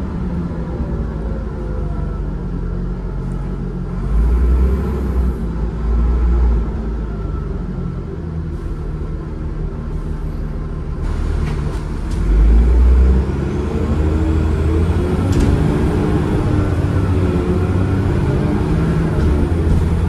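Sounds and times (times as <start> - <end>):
bus diesel engine under way: 0.0 - 20.0.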